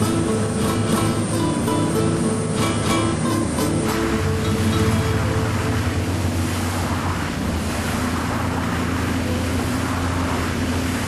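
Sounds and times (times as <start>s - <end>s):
low boat engine hum: 0.0s - 11.0s
rushing water: 0.0s - 11.0s
wind: 0.0s - 11.0s.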